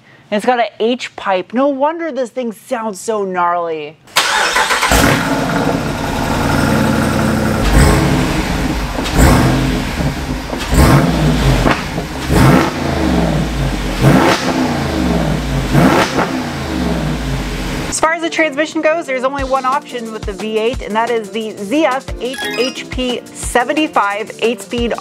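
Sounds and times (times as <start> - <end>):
engine idling and revving: 4.7 - 17.9.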